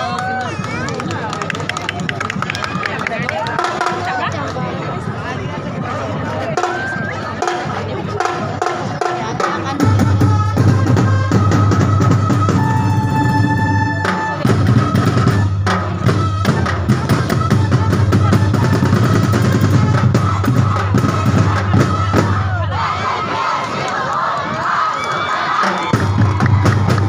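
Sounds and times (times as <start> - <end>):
crowd voices: 0.0 - 27.0
percussion band drums and cymbals: 1.4 - 23.0, 25.6 - 27.0.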